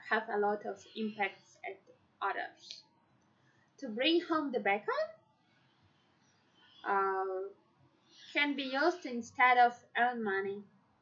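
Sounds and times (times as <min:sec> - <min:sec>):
woman speaking: 0:00.0 - 0:02.8, 0:03.8 - 0:05.2, 0:06.9 - 0:07.5, 0:08.3 - 0:10.6.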